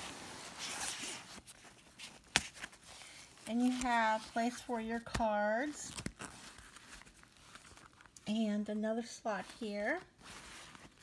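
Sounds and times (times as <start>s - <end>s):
fabric wallet rustling: 0.0s - 8.2s, 9.4s - 11.0s.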